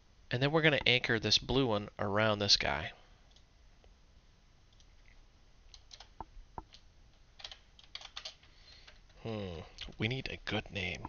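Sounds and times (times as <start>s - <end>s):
faint keyboard typing: 3.2s - 3.5s, 4.7s - 11.0s.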